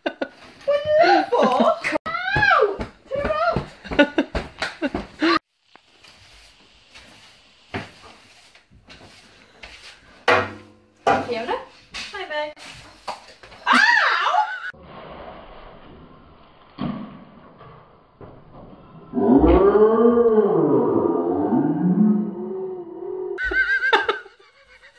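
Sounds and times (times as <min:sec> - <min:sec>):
children squealing and laughing: 0:13.7 - 0:14.8.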